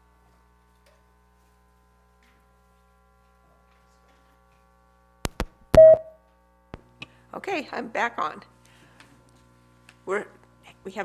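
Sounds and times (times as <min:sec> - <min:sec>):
microphone feedback tone: 0:05.8 - 0:06.2.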